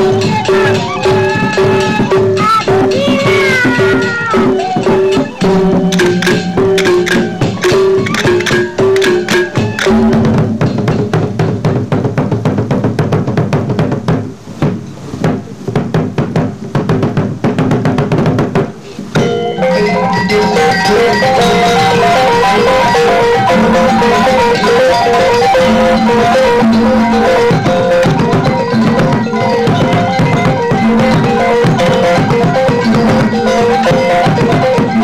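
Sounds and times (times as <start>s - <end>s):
wavering held melody: 0.0s - 11.3s, 19.2s - 35.0s
clashing cymbals: 0.0s - 12.0s, 18.9s - 35.0s
large drums: 0.0s - 35.0s.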